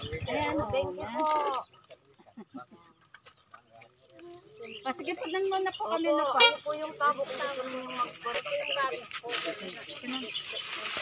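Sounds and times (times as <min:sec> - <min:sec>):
faint voices talking quietly: 0:00.0 - 0:11.0.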